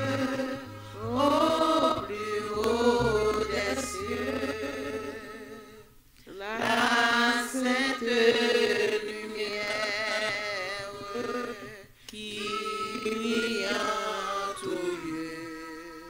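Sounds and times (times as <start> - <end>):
woman singing a hymn unaccompanied: 0.0 - 16.0.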